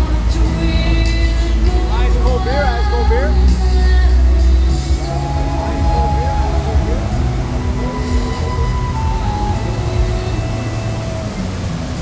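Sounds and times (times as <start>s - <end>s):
fountain show music over loudspeakers: 0.0s - 12.0s
rushing water jets: 0.0s - 12.0s.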